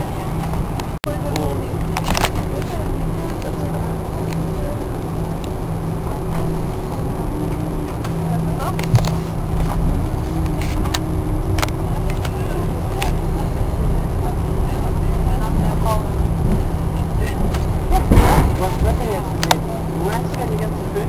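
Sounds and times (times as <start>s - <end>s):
aircraft engines rumbling: 0.0s - 21.0s
loud rushing burst: 16.1s - 19.4s.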